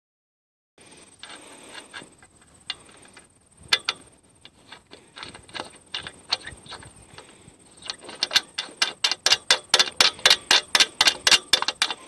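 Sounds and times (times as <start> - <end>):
bolt threads clicking: 1.2 - 12.0.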